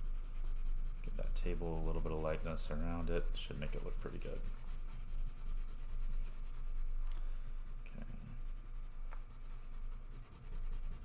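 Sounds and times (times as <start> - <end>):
pencil scratching on paper: 0.0 - 11.0
steady low hum: 0.0 - 11.0.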